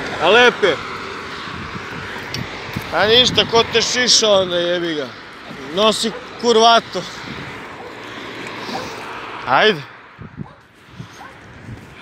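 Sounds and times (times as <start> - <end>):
motor scooter passing: 0.0 - 12.0
road traffic rushing: 0.0 - 12.0.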